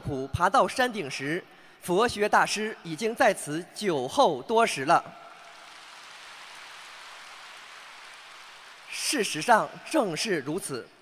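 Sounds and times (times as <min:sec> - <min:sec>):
audience applause: 0:05.4 - 0:09.8.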